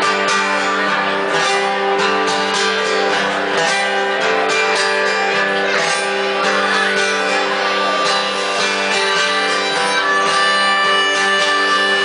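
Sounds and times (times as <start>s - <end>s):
acoustic guitar strumming: 0.0s - 12.0s
harmonica playing held notes: 6.2s - 12.0s.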